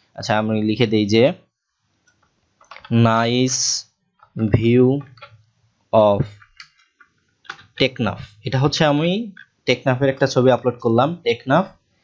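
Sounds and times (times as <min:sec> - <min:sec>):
person speaking: 0:00.2 - 0:01.4, 0:02.7 - 0:03.8, 0:04.4 - 0:05.4, 0:06.0 - 0:06.7, 0:07.5 - 0:11.7.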